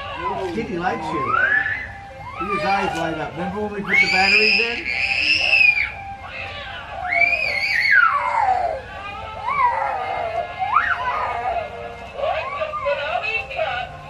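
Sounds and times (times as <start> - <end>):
toy figure talking in sing-song voice: 8.5 - 14.0.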